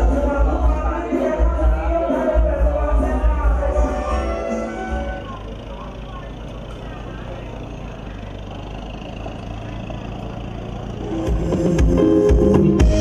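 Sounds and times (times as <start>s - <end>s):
loud music with heavy drum beat: 0.0s - 4.6s, 11.1s - 13.0s
faint voices: 0.0s - 12.0s.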